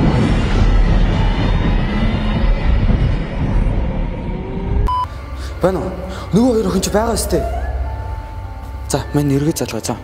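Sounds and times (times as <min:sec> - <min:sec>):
deep rumbling drone: 0:00.0 - 0:10.0.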